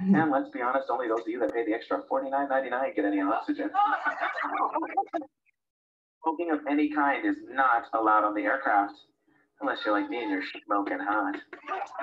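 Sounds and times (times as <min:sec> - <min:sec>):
passengers laughing: 0:03.8 - 0:05.3, 0:11.4 - 0:12.0.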